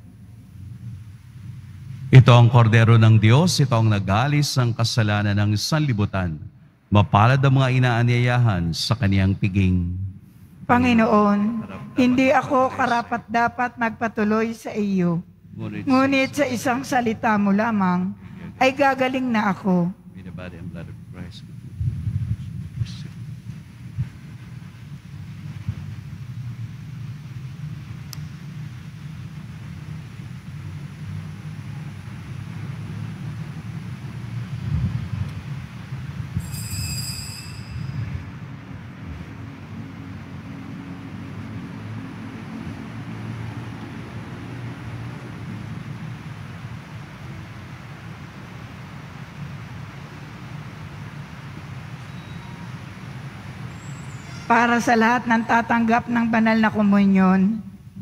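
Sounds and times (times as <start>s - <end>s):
low background rumble: 0.0s - 36.9s, 37.6s - 58.0s
high-pitched ring: 36.3s - 38.5s, 52.0s - 52.8s, 53.7s - 55.5s.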